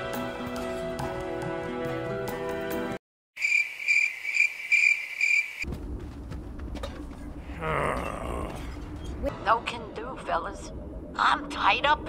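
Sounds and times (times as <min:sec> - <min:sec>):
cricket chirping: 0:03.4 - 0:05.6
low rumble: 0:05.7 - 0:12.0.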